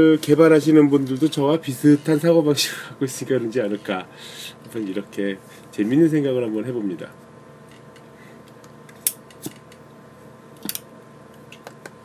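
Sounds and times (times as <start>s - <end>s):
steady faint hum: 0.0s - 12.0s.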